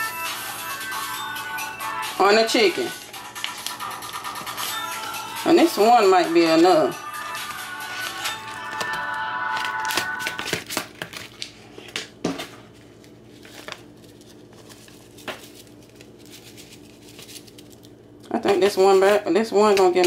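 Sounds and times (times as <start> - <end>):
background music: 0.0 - 10.4
seasoning packet crinkling: 13.0 - 18.2.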